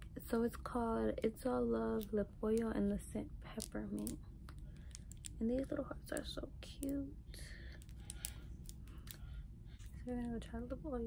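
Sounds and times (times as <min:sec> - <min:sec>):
nails clicking on plastic bottle: 0:03.5 - 0:07.0, 0:07.7 - 0:09.2.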